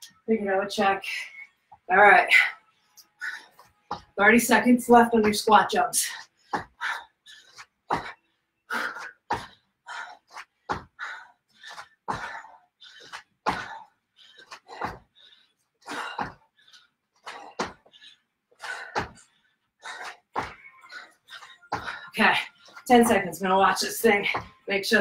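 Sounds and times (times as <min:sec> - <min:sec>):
hard exertion breaths: 0:06.0 - 0:22.9.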